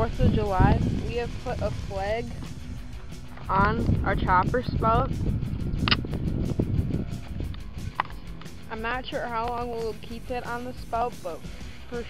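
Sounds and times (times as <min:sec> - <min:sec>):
low uneven rumble: 0:00.0 - 0:11.1
background music: 0:00.0 - 0:12.0.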